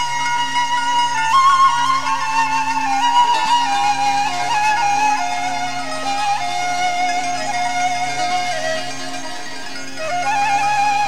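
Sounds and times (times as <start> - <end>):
ornamented folk melody: 0.0 - 11.0.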